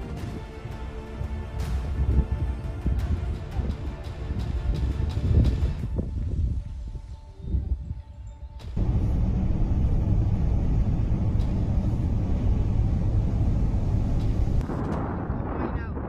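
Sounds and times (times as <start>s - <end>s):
dust storm low rumble: 0.0s - 16.0s.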